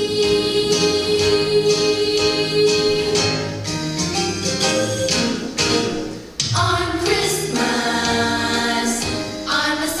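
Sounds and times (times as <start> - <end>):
choir singing with music: 0.0 - 10.0.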